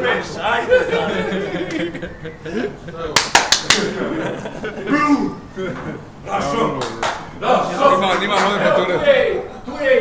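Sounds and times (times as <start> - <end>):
sharp hand claps: 3.2 - 3.9, 6.8 - 7.3.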